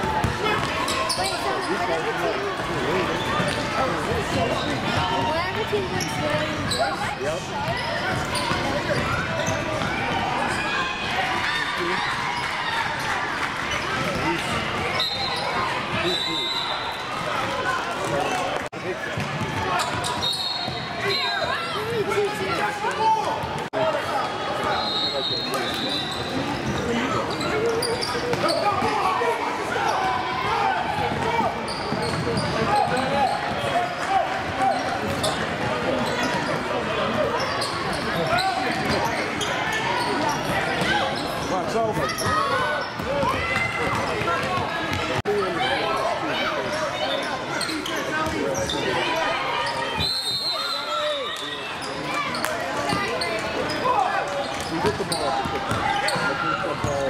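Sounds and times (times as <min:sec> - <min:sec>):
background chatter and calls: 0:00.0 - 0:57.0
referee's whistle: 0:14.9 - 0:17.0, 0:19.8 - 0:21.5, 0:24.7 - 0:26.4, 0:49.9 - 0:51.7.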